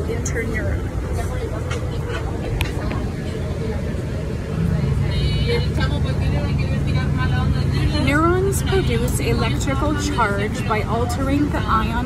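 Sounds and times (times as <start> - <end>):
bus road rumble: 0.0 - 12.0
faint voices: 0.0 - 12.0.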